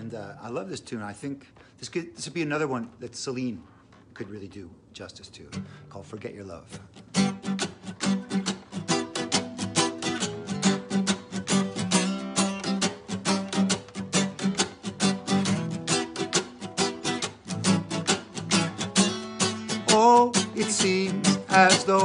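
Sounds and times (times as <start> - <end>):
acoustic guitar strumming: 6.7 - 22.0.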